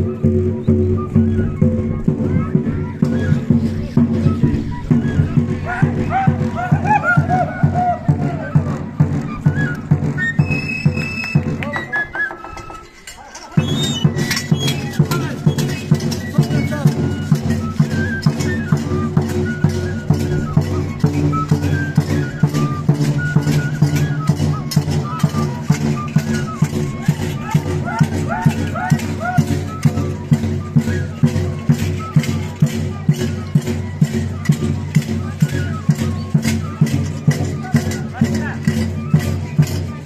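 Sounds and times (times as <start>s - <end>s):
high melody line: 0.1s - 39.8s.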